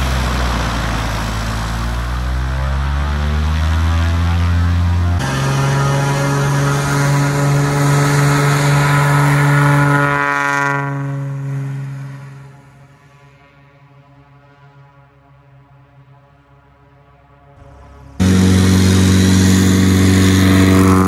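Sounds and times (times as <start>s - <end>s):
propeller plane engine drone: 0.0s - 21.0s.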